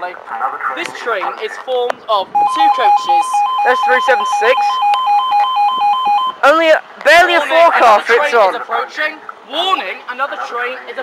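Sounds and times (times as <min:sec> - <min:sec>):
recorded voice warning: 0:00.6 - 0:04.8
two-tone crossing alarm: 0:02.4 - 0:06.4.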